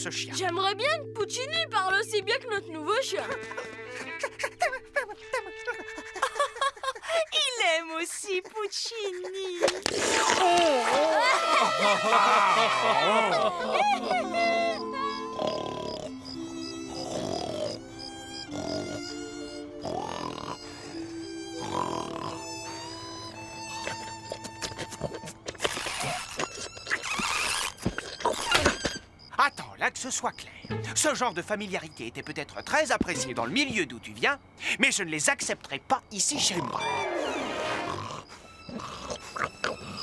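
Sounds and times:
soft sustained music: 0.0 - 6.7, 12.6 - 25.5
cricket chirp: 11.8 - 40.0
cartoon dog snoring: 15.3 - 19.2, 19.8 - 20.8, 21.6 - 22.9, 36.5 - 40.0.

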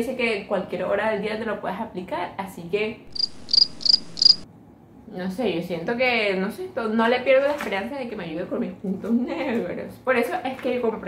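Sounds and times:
cricket chirping: 3.1 - 4.4.

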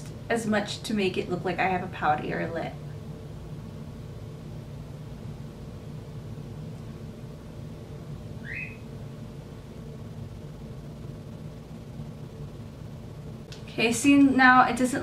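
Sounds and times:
low room hum: 0.0 - 15.0
short rising chirp: 8.4 - 8.9.

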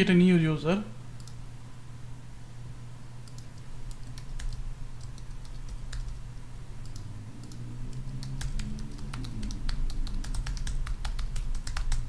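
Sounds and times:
computer keyboard typing: 3.2 - 6.2, 6.8 - 12.0.

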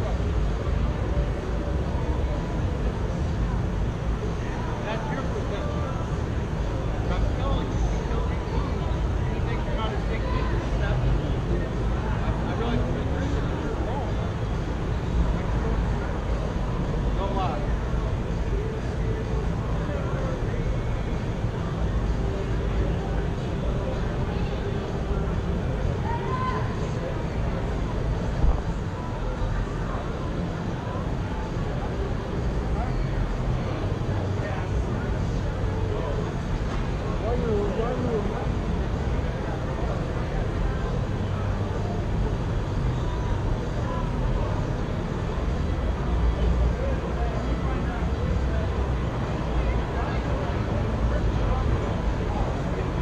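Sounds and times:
faint distant voices: 0.0 - 53.0
steady low street rumble: 0.0 - 53.0.

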